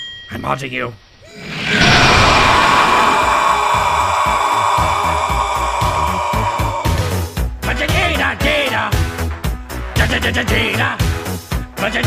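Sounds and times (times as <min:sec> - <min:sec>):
rushing jet-like whoosh: 0:01.3 - 0:05.8.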